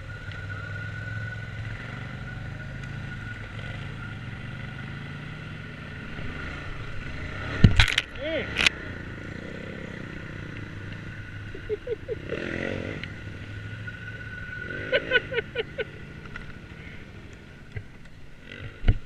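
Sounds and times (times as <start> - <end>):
atv engine running: 0.0 - 19.0.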